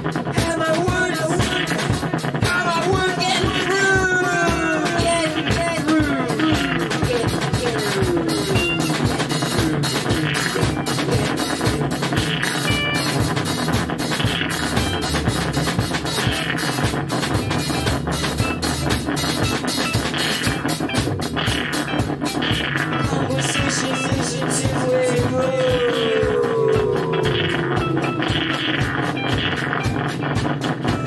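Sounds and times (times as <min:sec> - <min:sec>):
live rock band music: 0:00.0 - 0:31.0.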